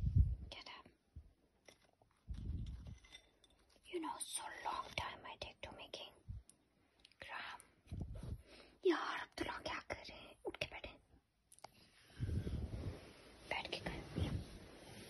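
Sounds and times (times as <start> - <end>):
person whispering: 0.4 - 1.0, 3.9 - 6.4, 7.2 - 7.8, 8.8 - 11.1, 13.4 - 14.5.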